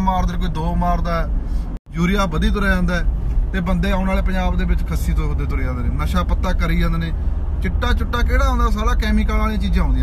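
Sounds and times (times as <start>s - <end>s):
man talking: 0.0s - 10.0s
vehicle low rumble: 0.0s - 10.0s.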